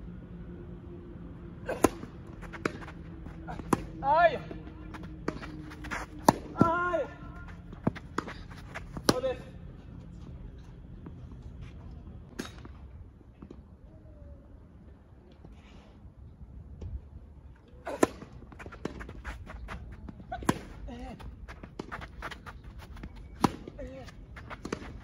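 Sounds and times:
players shouting: 0:01.6 - 0:08.0
racket hitting tennis ball: 0:01.7 - 0:03.9, 0:04.9 - 0:06.8, 0:17.9 - 0:19.7, 0:20.4 - 0:25.0
tennis ball bouncing: 0:01.7 - 0:04.0, 0:04.6 - 0:06.8, 0:07.4 - 0:09.2, 0:18.0 - 0:25.0.

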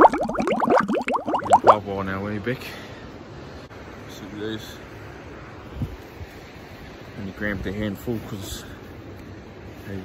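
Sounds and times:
cartoon bubbling bloops: 0:00.0 - 0:01.8.

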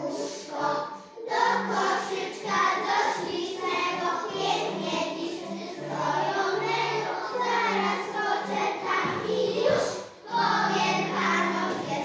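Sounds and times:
children singing together: 0:00.0 - 0:12.0.

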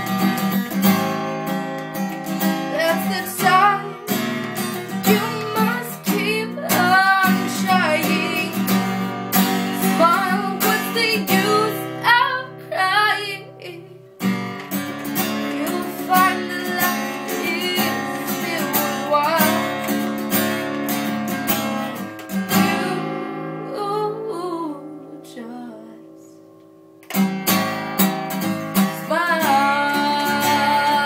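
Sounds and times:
acoustic guitar strumming: 0:00.0 - 0:24.2, 0:24.8 - 0:31.0
woman singing: 0:02.2 - 0:09.0, 0:09.7 - 0:14.1, 0:15.3 - 0:20.0, 0:22.5 - 0:26.4, 0:28.8 - 0:31.0.

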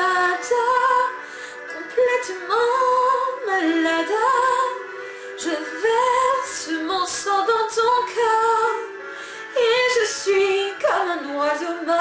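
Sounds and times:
woman singing a slow ballad: 0:00.0 - 0:12.0.

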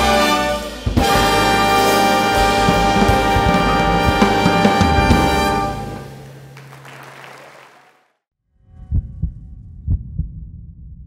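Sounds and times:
big band brass chord: 0:00.0 - 0:07.0
low rumble: 0:08.6 - 0:11.0.

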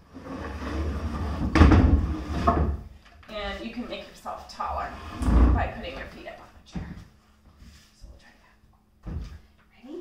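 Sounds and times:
chair rumbling on floor: 0:00.0 - 0:02.9, 0:04.6 - 0:06.2.

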